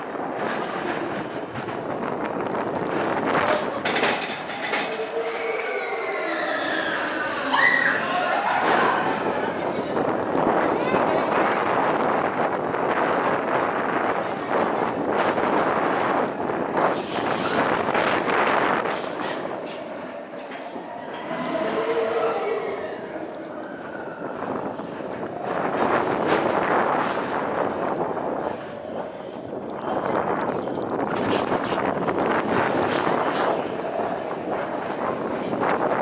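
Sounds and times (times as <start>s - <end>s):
bobsled rolling rumble: 0.0s - 36.0s
high wheel squeal: 4.5s - 8.2s.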